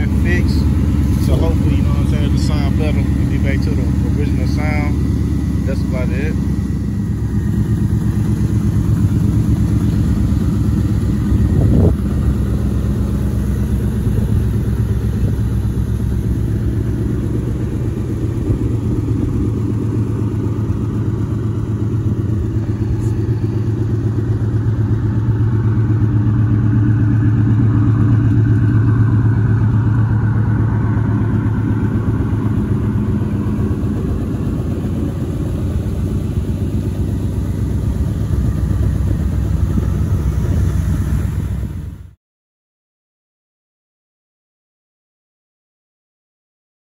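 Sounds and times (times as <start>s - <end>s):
car engine idling: 0.0s - 42.2s.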